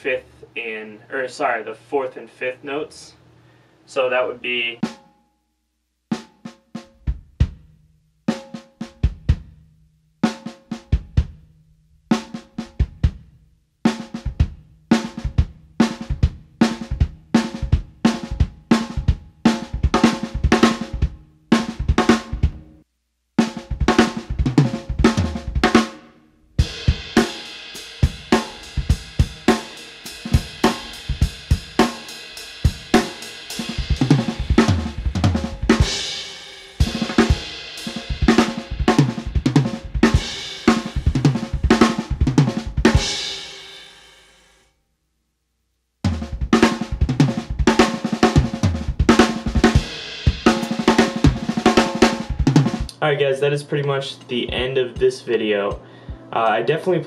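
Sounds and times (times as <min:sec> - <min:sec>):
drum kit rolls: 0:13.9 - 0:22.7, 0:23.4 - 0:44.1, 0:46.0 - 0:57.0.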